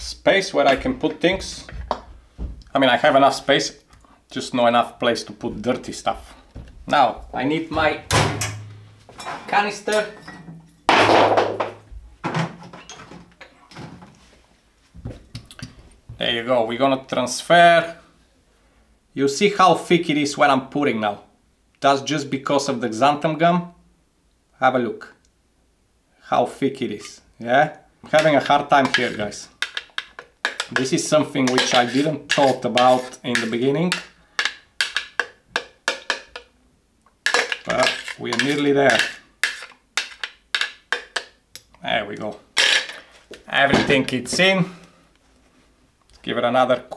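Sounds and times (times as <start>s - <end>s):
metal spoon knocking plastic jug: 28.1s - 36.5s, 37.3s - 41.4s.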